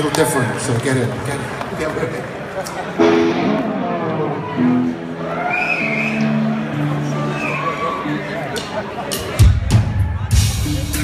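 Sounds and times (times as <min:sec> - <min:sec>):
electric guitar and bass notes: 0:03.0 - 0:07.4, 0:09.1 - 0:11.0.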